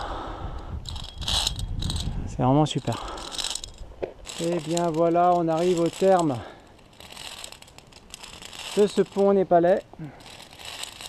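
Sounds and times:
wind buffeting microphone: 0:00.0 - 0:04.4
scraping hiss: 0:00.0 - 0:11.0.

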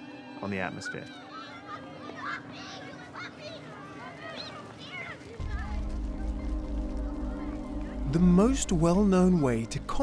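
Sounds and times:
children shouting and calling: 0:00.0 - 0:07.9.

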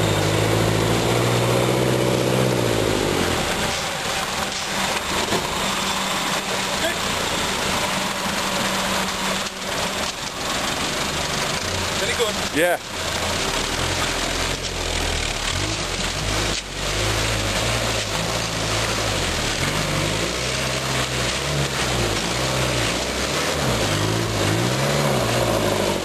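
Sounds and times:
engine revving through mud: 0:00.0 - 0:26.0.

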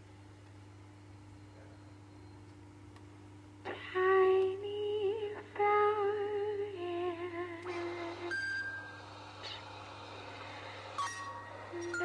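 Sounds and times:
woman singing with vibrato: 0:03.7 - 0:08.7, 0:11.6 - 0:12.0
high steady tone: 0:07.7 - 0:09.4, 0:10.8 - 0:12.0.

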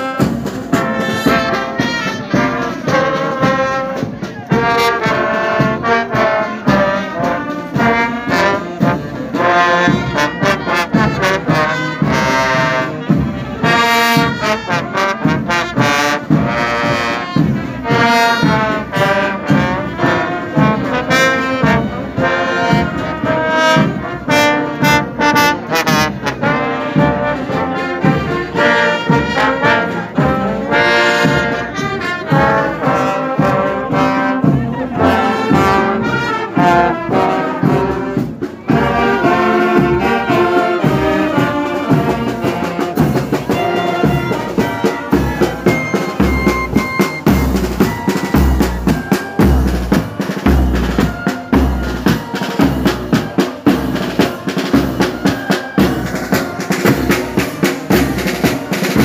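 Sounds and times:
marching brass band playing: 0:00.0 - 0:59.0.

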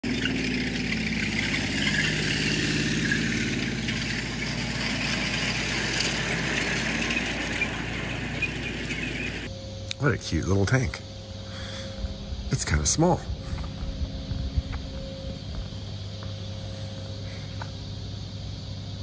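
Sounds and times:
tank engines running: 0:00.0 - 0:19.0.

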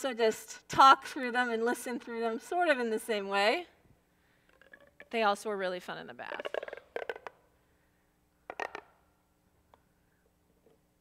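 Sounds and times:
plastic pop tube popping and clicking: 0:06.3 - 0:07.4, 0:08.4 - 0:09.0.

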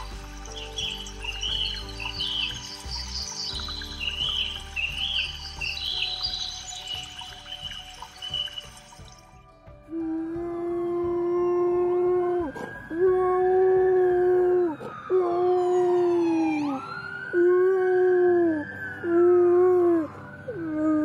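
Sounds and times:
dog howling: 0:10.4 - 0:21.0.

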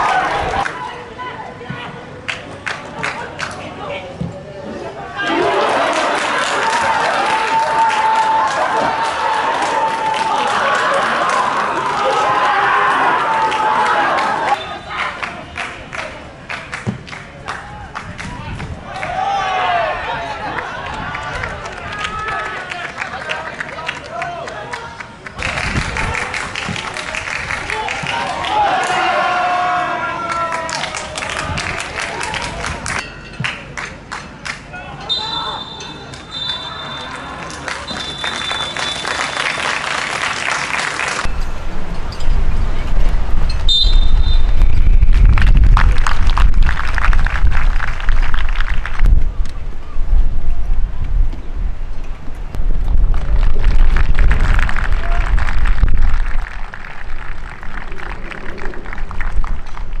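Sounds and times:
people clapping hands: 0:02.2 - 0:03.7, 0:05.5 - 0:12.6, 0:13.4 - 0:19.2, 0:20.5 - 0:29.0, 0:30.2 - 0:34.7, 0:37.0 - 0:41.3, 0:45.0 - 0:49.2, 0:53.1 - 1:00.0
wind rumble on microphone: 0:25.4 - 0:27.8, 0:41.2 - 1:00.0
referee's whistle blowing: 0:35.0 - 0:37.3, 0:37.9 - 0:39.6, 0:43.6 - 0:45.0.

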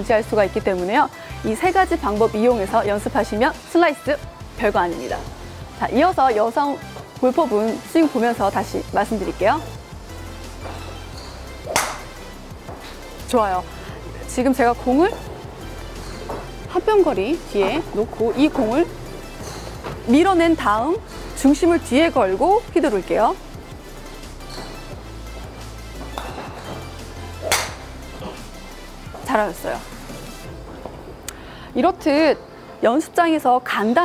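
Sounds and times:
background music: 0:00.0 - 0:34.0
golf club whoosh and ball crack: 0:11.6 - 0:12.2, 0:27.4 - 0:27.9.

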